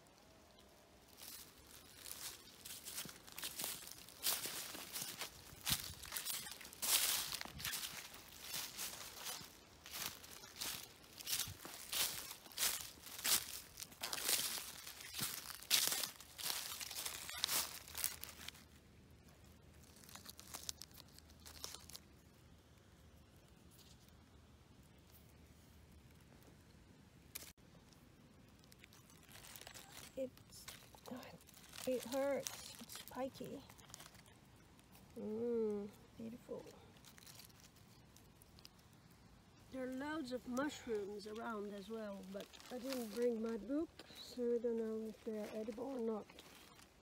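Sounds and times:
footsteps crunching through dry leaves: 0.2 - 18.8, 19.8 - 22.1, 28.6 - 47.0.

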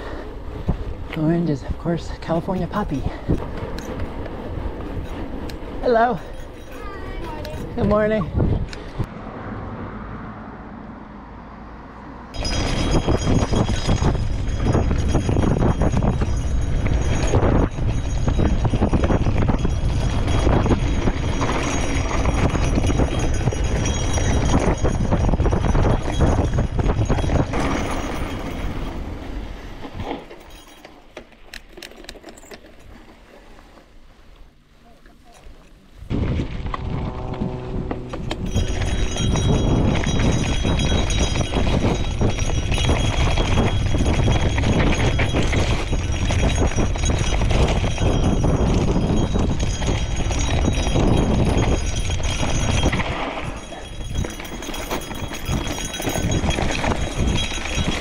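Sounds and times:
wind rushing over microphone: 0.0 - 30.1, 36.0 - 58.0.

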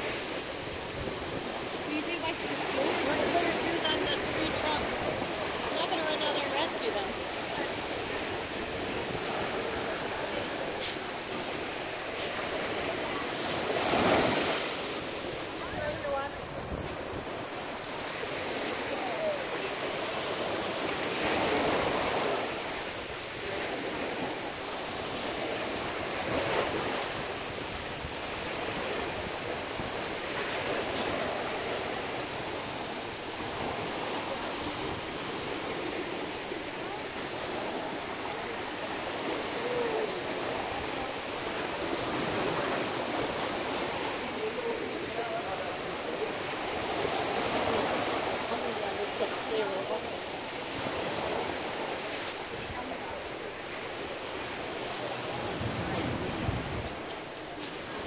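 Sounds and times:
small waves breaking on beach: 0.0 - 58.0.

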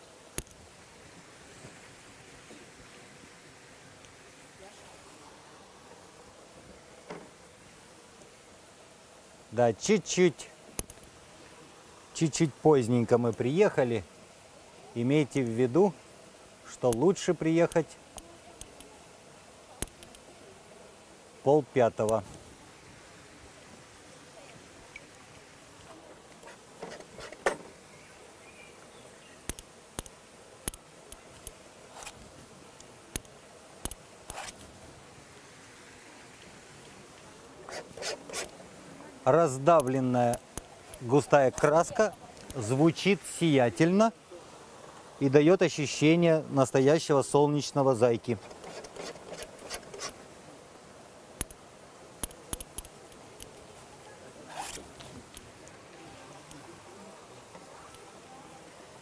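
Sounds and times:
sharp clicks: 10.8 - 11.1, 19.8 - 20.2, 29.4 - 32.2, 52.2 - 53.6
painting tools scraping: 26.3 - 27.7, 34.3 - 34.7, 37.6 - 38.6, 48.3 - 50.2, 54.5 - 55.2.

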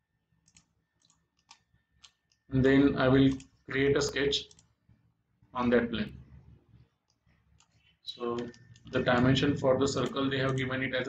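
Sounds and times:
computer mouse clicks: 0.4 - 2.5, 3.2 - 4.8, 6.1 - 9.3, 9.9 - 11.0.

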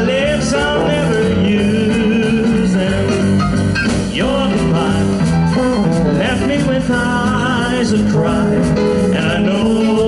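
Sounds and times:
drums: 0.0 - 10.0
trombone: 0.0 - 10.0.

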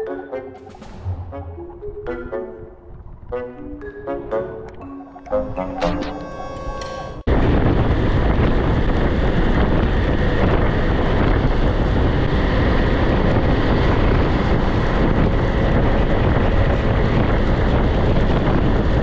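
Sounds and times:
wind rushing over microphone: 7.2 - 19.0.

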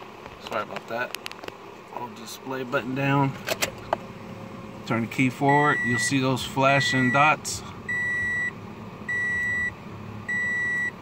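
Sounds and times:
car warning chime beeps: 5.4 - 11.0.

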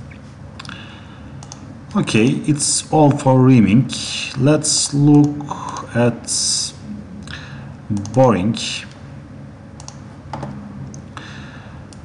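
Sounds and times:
steady low hum: 0.0 - 12.0
computer input clicks: 7.9 - 8.3.

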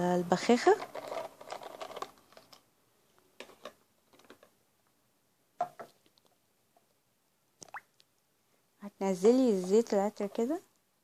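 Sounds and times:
plastic clicks and rattles: 0.8 - 2.7, 3.4 - 4.6.

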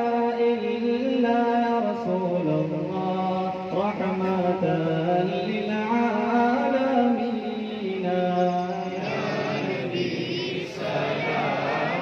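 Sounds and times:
men chanting unaccompanied: 8.9 - 12.0.

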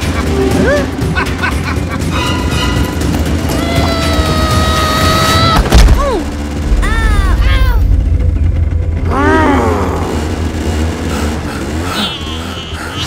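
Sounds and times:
low rumble: 2.7 - 11.9.

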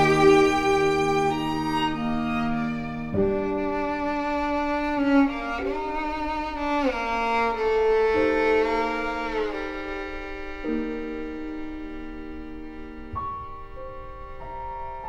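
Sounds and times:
slow sombre bowed strings music: 0.0 - 15.0.

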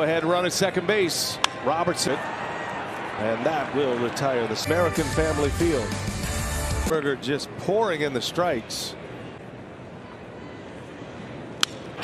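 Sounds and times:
ballpark background noise: 0.0 - 5.8, 6.8 - 12.0.

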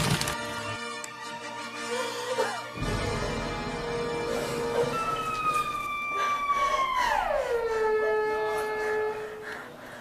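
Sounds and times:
high-pitched wail: 4.8 - 9.4.

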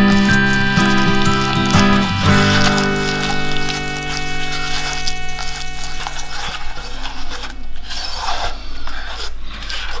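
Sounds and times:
soft background music: 0.0 - 7.9
spatula scraping a saucepan: 0.0 - 10.0.

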